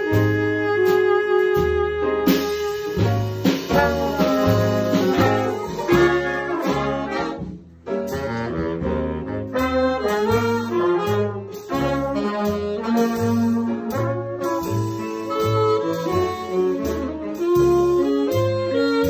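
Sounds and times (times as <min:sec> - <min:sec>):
jazz big band playing: 0:00.0 - 0:19.0
upright bass: 0:00.0 - 0:19.0.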